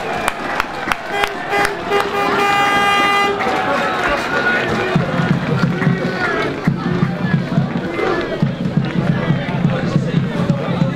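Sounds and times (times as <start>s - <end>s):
supporters singing and shouting: 0.0s - 10.9s.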